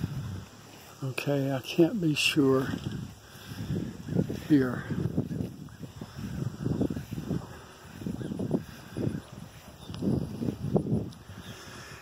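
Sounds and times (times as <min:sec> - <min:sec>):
footsteps on grass: 0:00.0 - 0:12.0.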